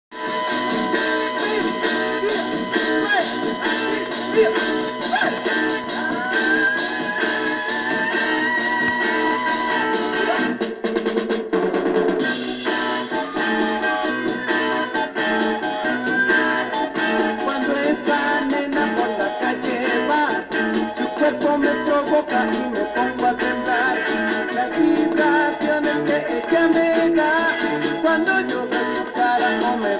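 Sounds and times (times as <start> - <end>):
drums: 0.1 - 29.9
electric guitar: 0.1 - 29.9.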